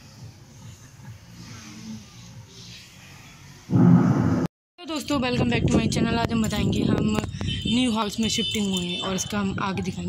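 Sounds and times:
loud low rumble: 0:03.7 - 0:04.5.

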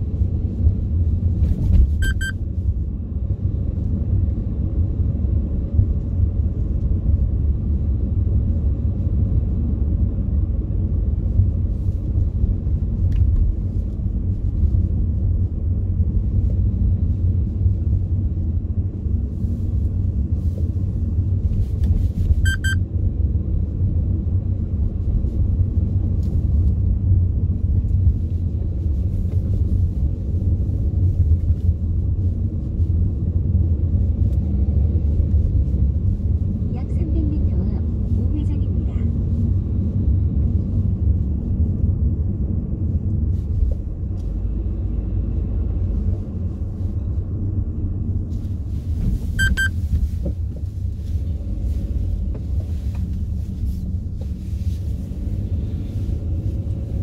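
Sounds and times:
car cabin road rumble: 0:00.0 - 0:57.0
short high electronic beep: 0:02.0 - 0:02.4, 0:22.4 - 0:22.8, 0:49.4 - 0:49.8.

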